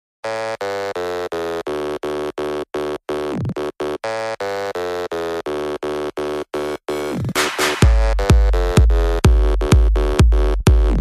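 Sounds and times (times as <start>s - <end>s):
pulsing synth chord stabs: 6.9s - 11.0s.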